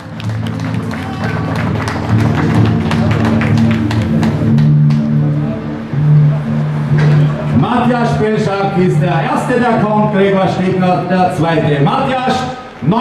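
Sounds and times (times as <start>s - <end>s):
music with steady beat over pa: 0.0s - 10.0s
shifting bass line: 0.0s - 13.0s.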